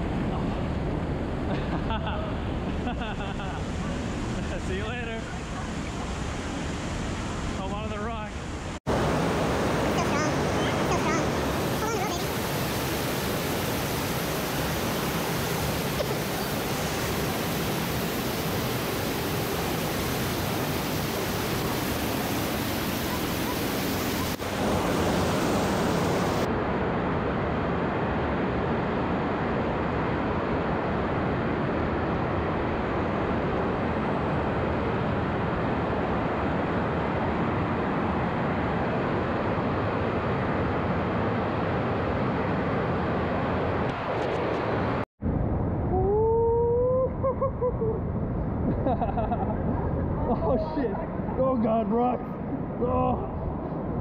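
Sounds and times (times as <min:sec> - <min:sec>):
river cascade rushing: 0:08.4 - 0:26.5.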